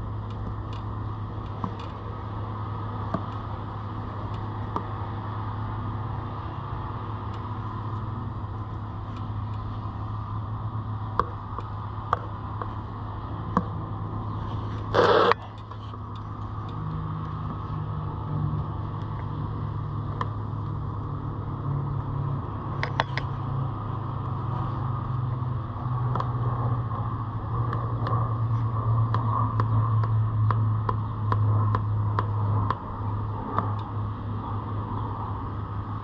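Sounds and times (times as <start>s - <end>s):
low mechanical hum: 0.0s - 36.0s.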